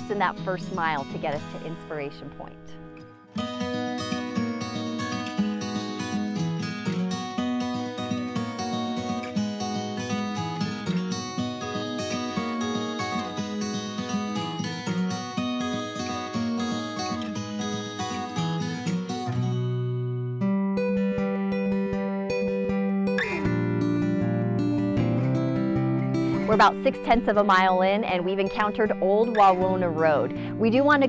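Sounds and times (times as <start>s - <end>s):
acoustic guitar music: 0.0s - 31.0s.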